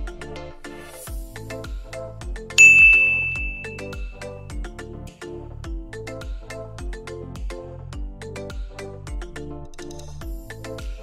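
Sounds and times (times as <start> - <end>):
upbeat background music: 0.0 - 11.0
bell-like ding: 2.6 - 4.3.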